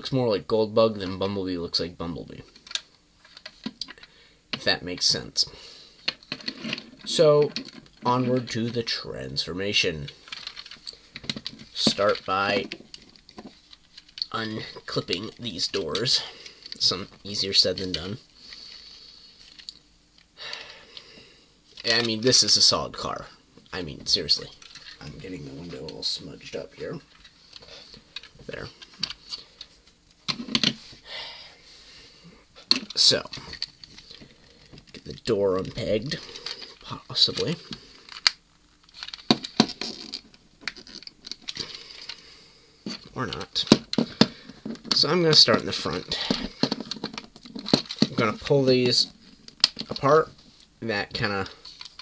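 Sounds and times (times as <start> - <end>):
hard plastic clicking and rubbing: 6.0 - 8.8, 10.0 - 18.1, 32.6 - 42.2, 42.9 - 50.2.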